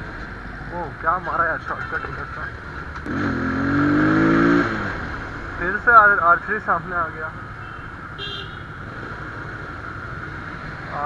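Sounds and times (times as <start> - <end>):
motorcycle engine: 1.9 - 11.0
vehicle horn beep: 7.6 - 8.8.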